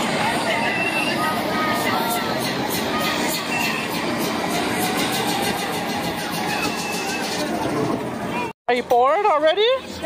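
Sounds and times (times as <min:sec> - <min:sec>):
ride machinery running: 0:00.0 - 0:08.5
voices: 0:00.0 - 0:08.5.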